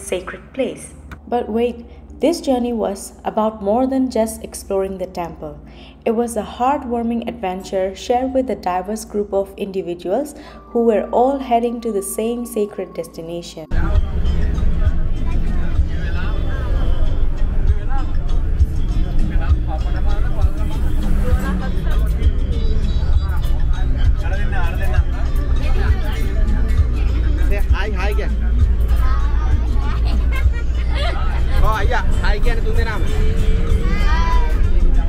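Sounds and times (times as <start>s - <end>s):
bus engine and road rumble: 13.7s - 35.0s
passengers' voices: 13.7s - 35.0s.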